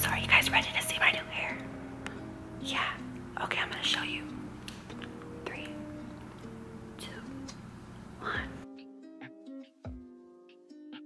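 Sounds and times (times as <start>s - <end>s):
soft instrumental music: 0.0s - 11.0s
breathy whispers: 8.2s - 8.6s.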